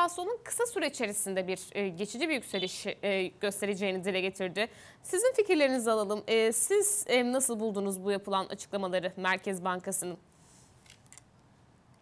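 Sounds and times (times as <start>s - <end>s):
woman speaking: 0.0s - 10.2s.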